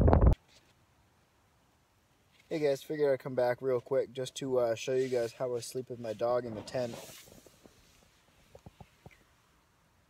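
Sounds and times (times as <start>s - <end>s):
wind noise on microphone: 0.0s - 0.4s.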